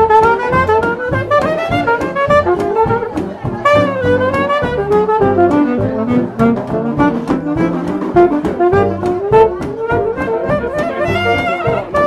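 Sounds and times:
plucked double bass: 0.0 - 12.0
steady drum beat: 0.0 - 12.0
wind instrument melody: 0.0 - 12.0.

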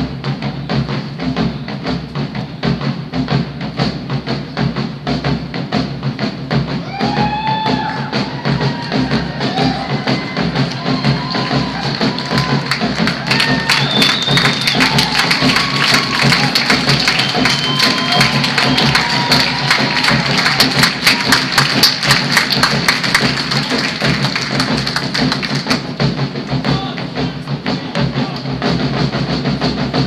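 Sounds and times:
marching band playing: 0.0 - 30.0
sharp percussion strokes: 0.0 - 30.0.

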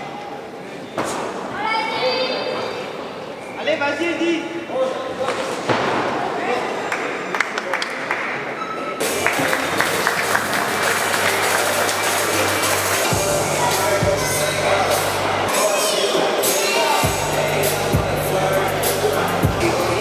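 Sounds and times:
voices in large hall: 0.0 - 20.0
music with low bass: 9.0 - 15.5, 17.0 - 20.0.

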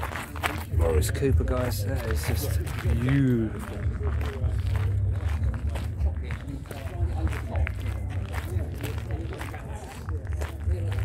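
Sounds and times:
footsteps on gravel: 0.0 - 11.0
steady low rumble: 0.0 - 11.0.

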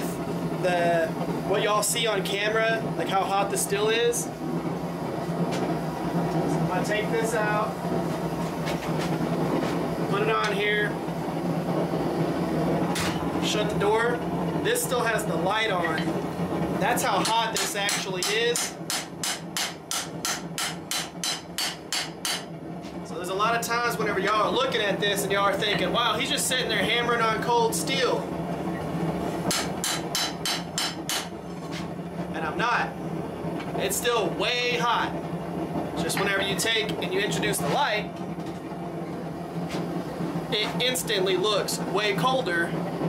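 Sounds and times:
forge roaring: 0.0 - 43.0
hammer striking steel on anvil: 17.2 - 22.5, 29.5 - 31.8.

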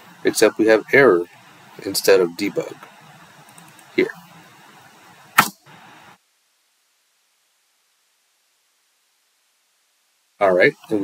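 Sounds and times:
faint background hiss: 0.0 - 11.0
sharp click: 5.4 - 5.7.

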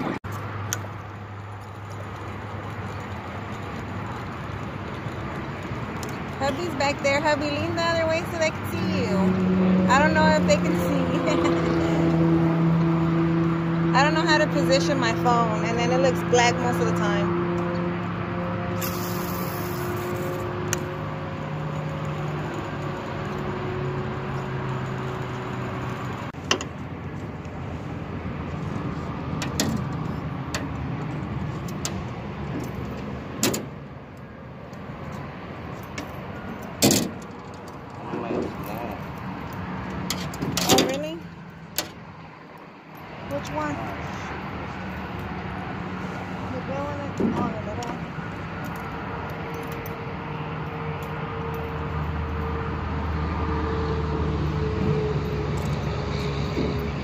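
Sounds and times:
fishing rod and reel clicks: 0.3 - 7.3, 18.8 - 23.4.

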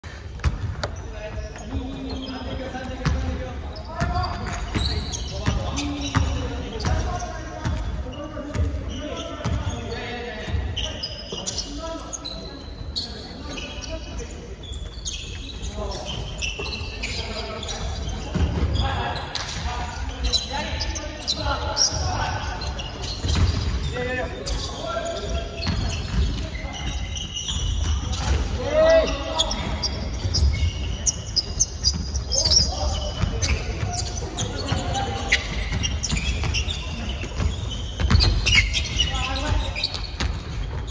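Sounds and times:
basketball bouncing on court: 3.0 - 3.3, 4.0 - 9.8, 23.1 - 23.8, 29.6 - 40.9.

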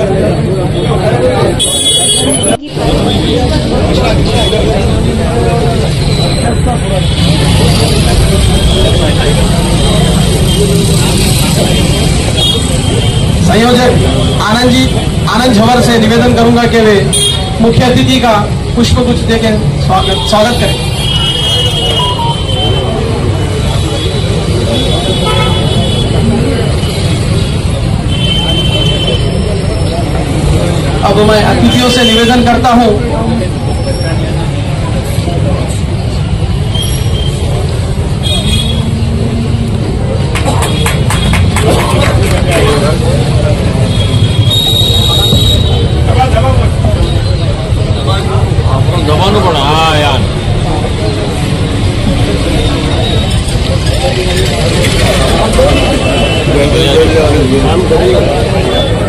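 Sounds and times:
faint background chatter: 0.0 - 13.4
indistinct voices outdoors: 0.0 - 59.0
road traffic rumble: 0.0 - 59.0
vehicle horns tooting: 1.4 - 3.5, 20.0 - 29.6, 38.1 - 39.2, 43.8 - 46.1, 55.5 - 57.3.

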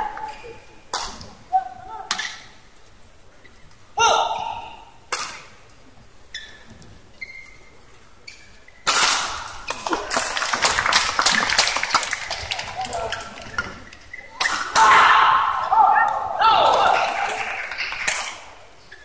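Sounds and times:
racket hitting shuttlecock: 5.1 - 5.4
crowd applauding: 9.7 - 13.5, 16.7 - 18.2.

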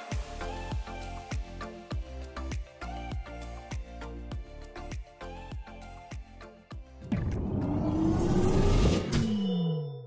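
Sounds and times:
rising rumbling whoosh: 7.1 - 9.3.

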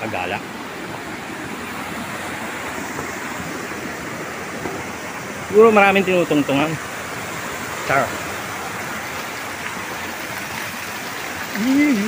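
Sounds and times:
waterfall roaring: 0.0 - 12.0.

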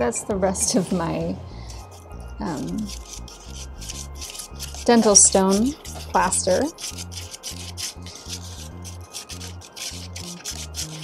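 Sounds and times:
background music with bass: 0.0 - 11.0
spoon scraping plaster in cup: 1.6 - 11.0.

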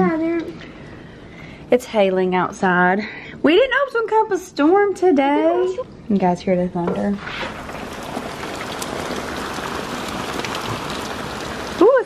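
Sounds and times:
steady rain hiss: 7.1 - 12.0
hailstones ticking: 7.5 - 12.0.

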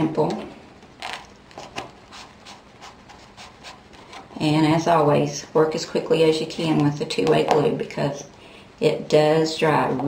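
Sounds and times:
glue pen rubbing on paper: 2.1 - 3.8.

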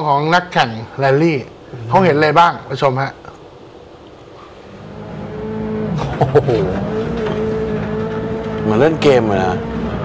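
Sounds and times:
rally car engine running: 4.8 - 10.0.

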